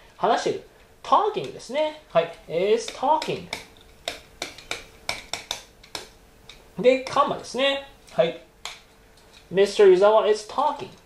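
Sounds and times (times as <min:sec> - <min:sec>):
faint steady hum: 0:00.0 - 0:11.0
stylus tapping on screen: 0:02.8 - 0:06.6.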